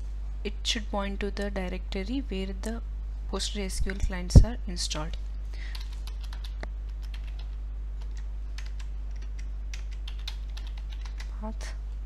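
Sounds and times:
low electrical hum: 0:00.0 - 0:12.0
computer keyboard typing: 0:05.6 - 0:11.3.

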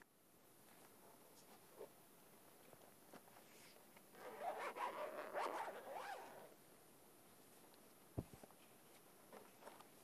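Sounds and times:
zipper being pulled open: 0:03.6 - 0:06.6.

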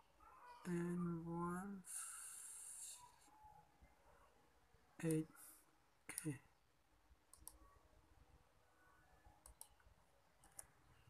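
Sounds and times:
faint computer mouse clicks: 0:07.3 - 0:07.7, 0:09.4 - 0:10.8.

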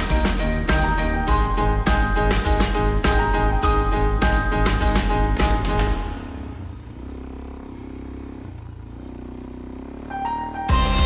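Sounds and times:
background music: 0:00.0 - 0:06.7, 0:10.1 - 0:11.0
motorcycle engine running: 0:00.0 - 0:11.0.

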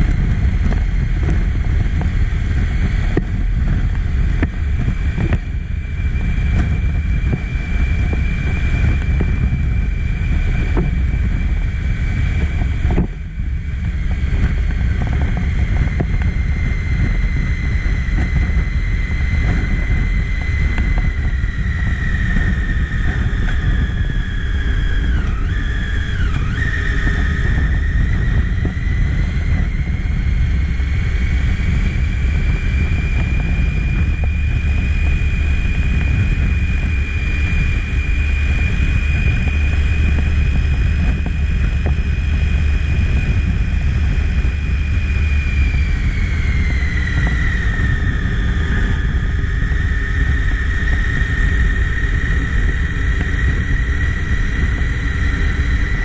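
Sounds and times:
motorcycle engine running: 0:00.0 - 0:56.0
wind rumble on microphone: 0:00.0 - 0:56.0.

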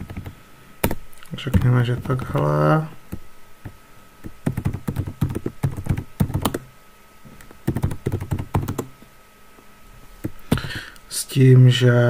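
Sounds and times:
typing on computer keyboard: 0:04.4 - 0:06.6, 0:07.6 - 0:08.9.

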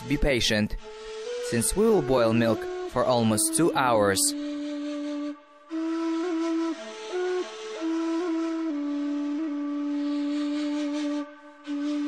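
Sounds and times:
slow flute melody: 0:00.0 - 0:12.0.

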